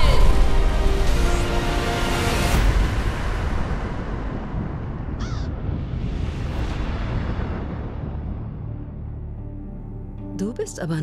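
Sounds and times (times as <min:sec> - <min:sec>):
raven cawing: 0:05.1 - 0:05.8.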